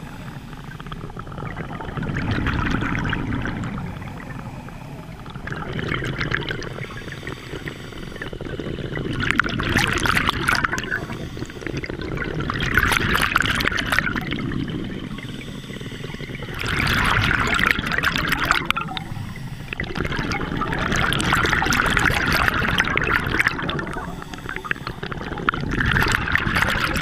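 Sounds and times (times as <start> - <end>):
exhaled bubbles rushing underwater: 0.0 - 27.0.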